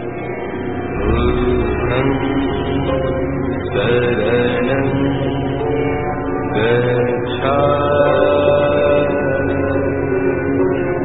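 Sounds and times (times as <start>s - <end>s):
person chanting: 0.9s - 11.0s.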